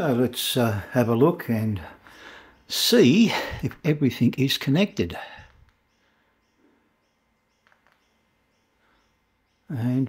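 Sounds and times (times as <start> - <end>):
faint clicks: 5.4 - 6.1, 7.6 - 8.3
faint high chirps: 5.4 - 10.0.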